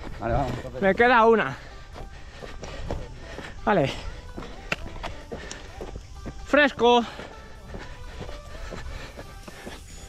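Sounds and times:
faint background music: 0:00.0 - 0:10.0
footsteps on rocky trail: 0:00.0 - 0:10.0
trekking pole clicks: 0:04.6 - 0:06.0.

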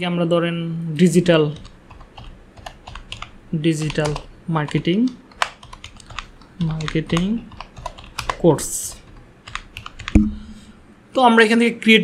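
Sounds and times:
keyboard keystrokes: 0:01.6 - 0:10.3.

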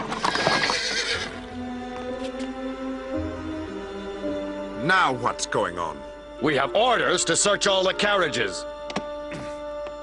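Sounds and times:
clatter of hooves: 0:00.0 - 0:01.3
horse whinnying: 0:00.0 - 0:01.4
background music: 0:00.0 - 0:10.0.

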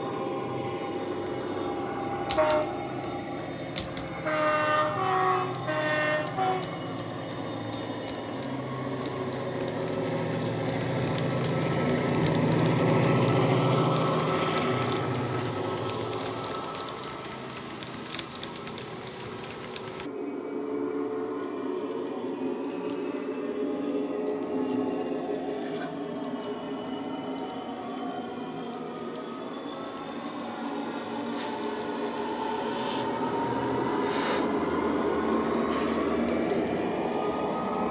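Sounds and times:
locomotive horn notes: 0:02.2 - 0:03.1, 0:04.1 - 0:06.8.

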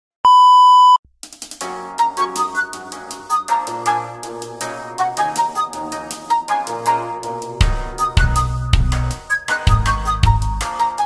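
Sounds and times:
high test-tone beep: 0:00.3 - 0:01.0
music with rhythmic beat: 0:01.2 - 0:11.0.

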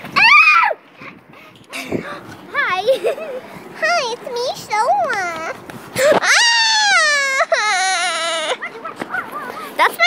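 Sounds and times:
girl wailing: 0:06.0 - 0:09.3.

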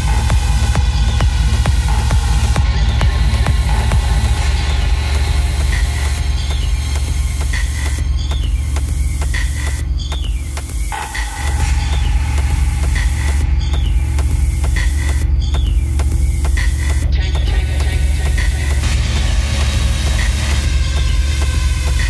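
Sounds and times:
deep bass line: 0:00.0 - 0:22.0
steady kick drum: 0:00.0 - 0:22.0
techno music: 0:00.0 - 0:22.0.

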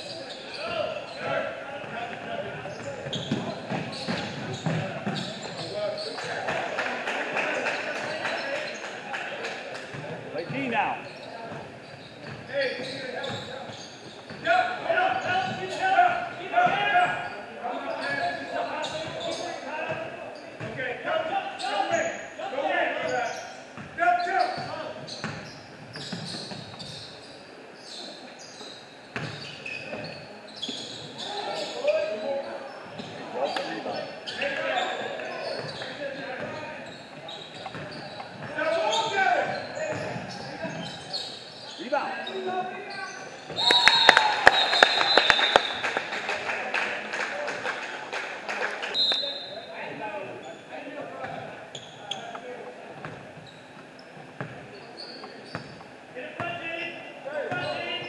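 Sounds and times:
basketball bouncing on gym floor: 0:02.6 - 0:05.7, 0:37.6 - 0:38.6.

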